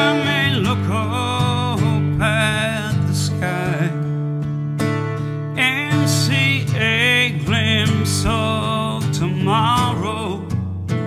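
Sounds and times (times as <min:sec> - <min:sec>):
man singing: 0:00.0 - 0:04.1, 0:05.6 - 0:10.6
strummed acoustic guitar: 0:00.0 - 0:11.0.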